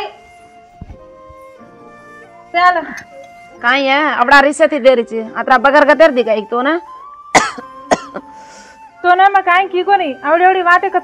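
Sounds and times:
person coughing: 7.4s - 8.2s.

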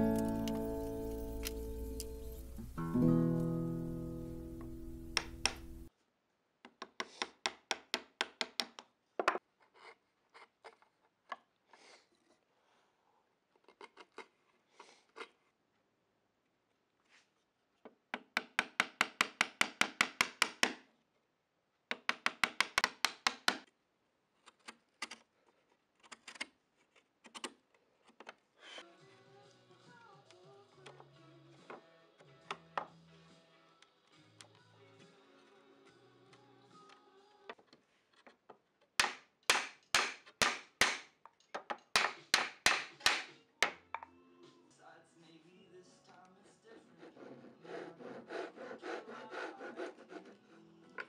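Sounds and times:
acoustic guitar music: 0.0s - 5.9s
chisel tapping wood: 4.6s - 5.8s, 6.7s - 9.4s, 18.1s - 20.8s, 21.9s - 23.6s, 39.0s - 44.0s.

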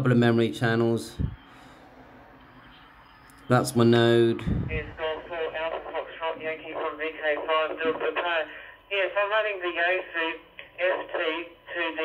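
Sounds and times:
voice over radio speaker: 3.4s - 12.0s.

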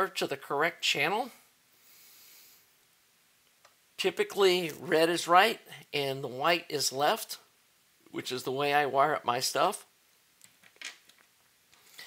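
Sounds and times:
faint hiss: 0.0s - 12.0s.

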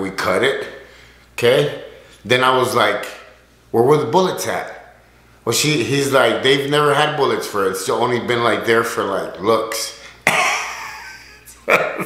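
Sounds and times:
man laughing: 10.2s - 12.0s.

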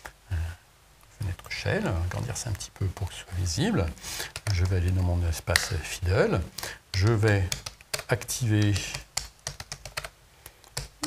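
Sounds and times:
computer keyboard typing: 1.3s - 3.2s, 4.2s - 5.8s, 6.9s - 11.0s.

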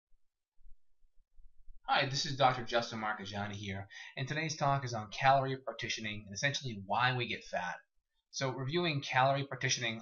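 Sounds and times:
man speaking: 1.9s - 10.0s.

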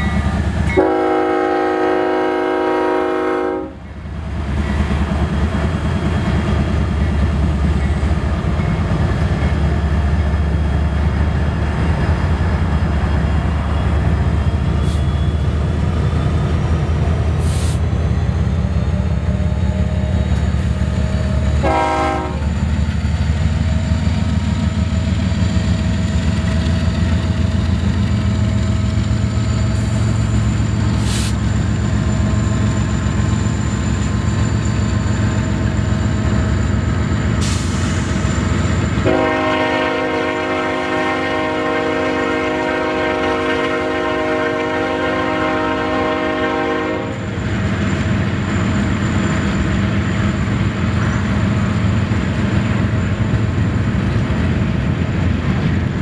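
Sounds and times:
diesel locomotive engines rumbling: 0.0s - 56.0s
train horn blast: 0.7s - 3.8s, 21.6s - 22.5s, 39.0s - 47.3s.

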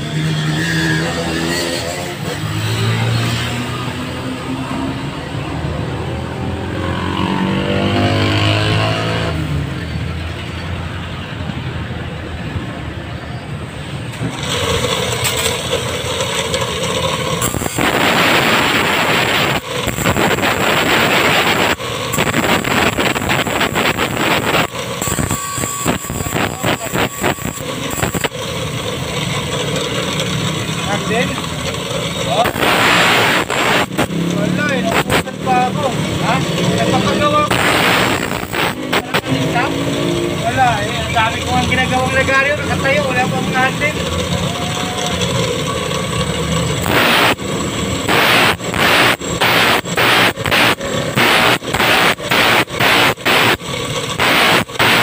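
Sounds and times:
motor vehicle passing: 0.0s - 12.9s, 28.2s - 52.3s.

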